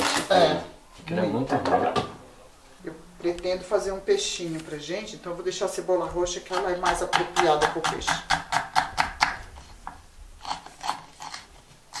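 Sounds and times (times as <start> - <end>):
knife chopping on wooden board: 6.5 - 11.4.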